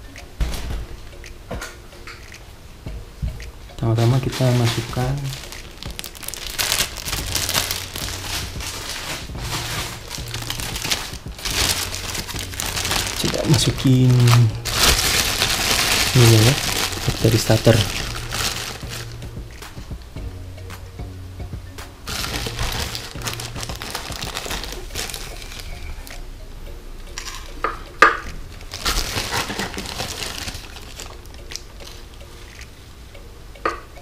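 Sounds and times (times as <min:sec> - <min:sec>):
plastic bag crinkling: 0:04.0 - 0:19.2, 0:22.1 - 0:25.9, 0:28.6 - 0:31.3
cup scooping granules: 0:04.3 - 0:19.1.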